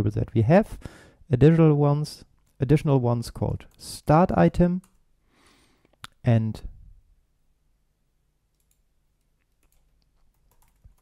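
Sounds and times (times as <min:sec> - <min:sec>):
faint keyboard typing: 0:04.8 - 0:05.1, 0:08.5 - 0:11.0.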